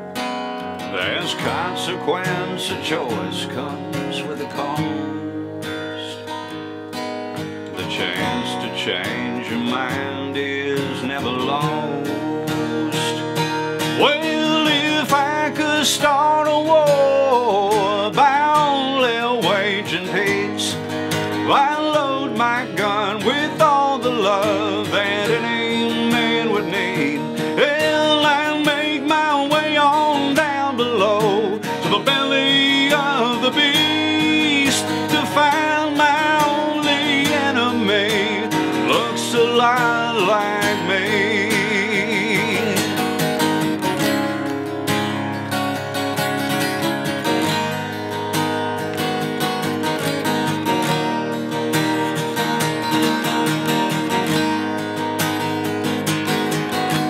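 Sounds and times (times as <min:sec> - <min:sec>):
acoustic guitar strummed: 0:00.0 - 0:57.0
man singing: 0:00.8 - 0:06.4, 0:07.7 - 0:44.4.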